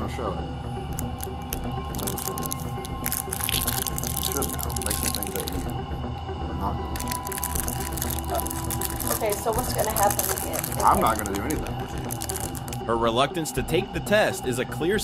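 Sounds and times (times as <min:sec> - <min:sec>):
low background music: 0:00.0 - 0:15.0
plastic wrapper crackling: 0:00.9 - 0:05.7, 0:06.9 - 0:12.8
quiet speech: 0:09.0 - 0:11.8.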